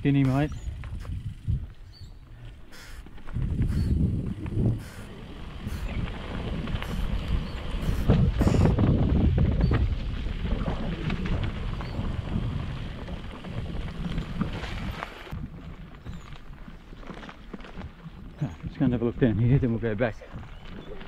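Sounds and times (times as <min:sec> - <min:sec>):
bike tyres rolling on dirt: 0:00.0 - 0:21.0
wind buffeting microphone: 0:00.0 - 0:21.0.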